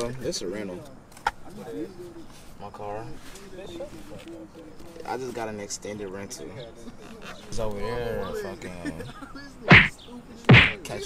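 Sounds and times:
sharp loud smacks: 0:09.7 - 0:09.9, 0:10.5 - 0:10.8.

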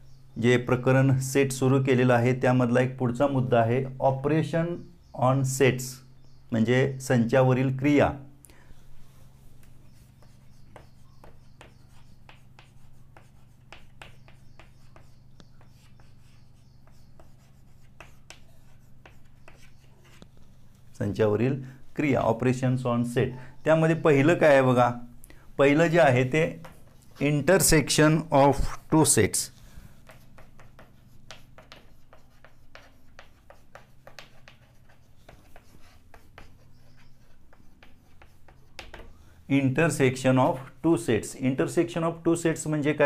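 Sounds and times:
chalk tapping and scratching: 0:09.6 - 0:20.9, 0:26.0 - 0:27.8, 0:29.4 - 0:39.2.

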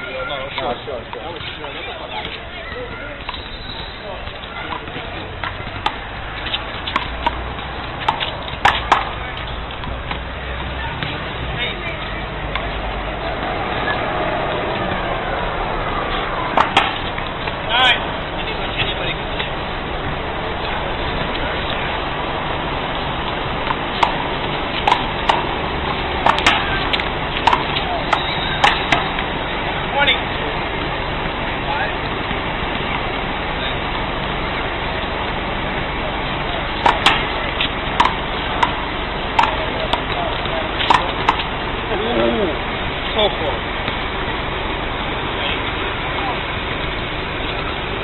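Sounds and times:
steady background noise: 0:00.0 - 0:48.0
rubber ball smacking wall: 0:16.6 - 0:17.2, 0:26.2 - 0:29.2.

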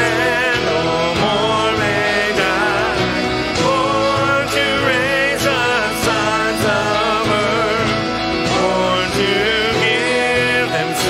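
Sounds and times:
keyboard and instrumental accompaniment: 0:00.0 - 0:11.0
women singing worship song: 0:00.0 - 0:11.0.

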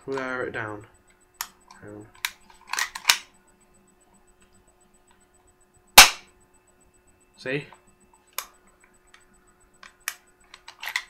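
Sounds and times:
loud sharp pistol crack: 0:06.0 - 0:06.3.

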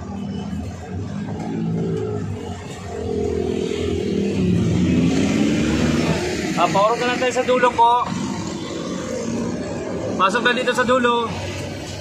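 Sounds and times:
vehicle engine revving: 0:00.8 - 0:12.0.

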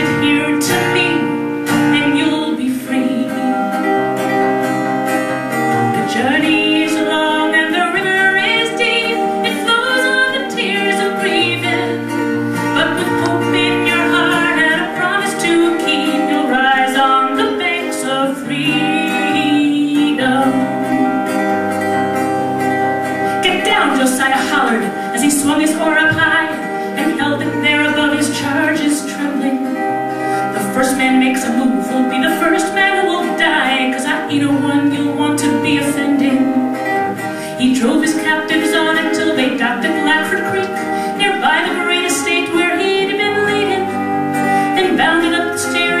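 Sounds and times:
strummed acoustic guitar: 0:00.0 - 0:46.0
woman singing folk ballad: 0:00.0 - 0:46.0.

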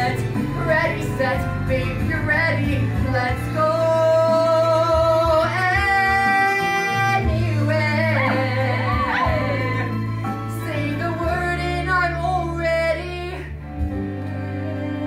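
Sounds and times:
instrumental accompaniment: 0:00.0 - 0:15.0.

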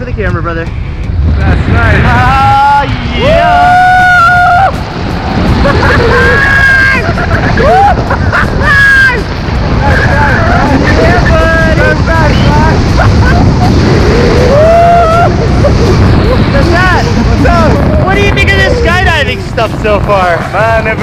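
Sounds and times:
voices: 0:00.0 - 0:21.0
wind buffeting microphone: 0:00.0 - 0:21.0.

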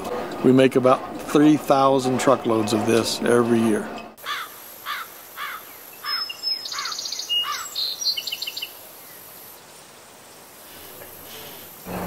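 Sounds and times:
faint outdoor ambience: 0:00.0 - 0:12.0
bird repeating arching call: 0:04.2 - 0:08.7
bird chirps and trill: 0:04.2 - 0:09.2.

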